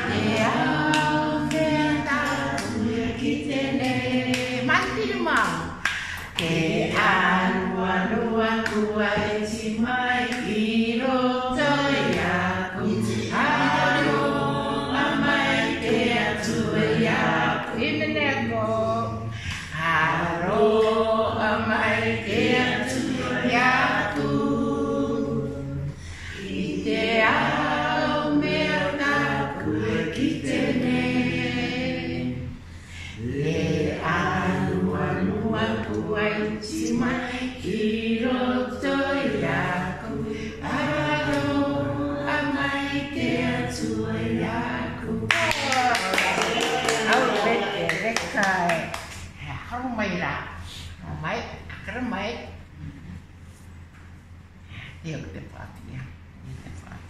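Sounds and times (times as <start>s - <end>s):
woman singing unaccompanied: 0.0s - 5.6s, 14.9s - 24.4s, 33.5s - 47.5s
people clapping: 0.0s - 7.6s, 45.3s - 49.4s.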